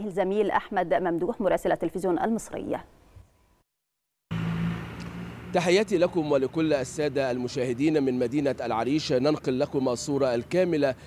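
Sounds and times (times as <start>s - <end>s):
street traffic noise: 4.3s - 11.0s
vehicle engine humming: 4.3s - 11.0s.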